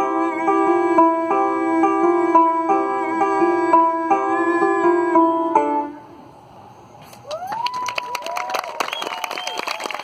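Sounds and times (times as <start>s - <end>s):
audience clapping: 7.2s - 10.0s
cheers and whistles: 7.2s - 10.0s.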